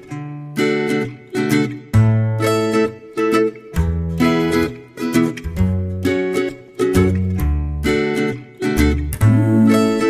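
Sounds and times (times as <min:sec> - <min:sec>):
strummed acoustic guitar chords: 0:00.0 - 0:10.0.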